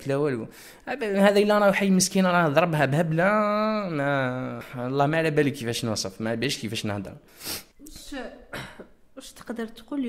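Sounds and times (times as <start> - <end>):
man clearing throat: 8.5 - 9.0.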